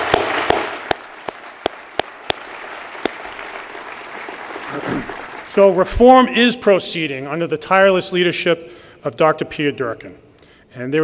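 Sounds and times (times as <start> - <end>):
audience applause: 0.0 - 5.8.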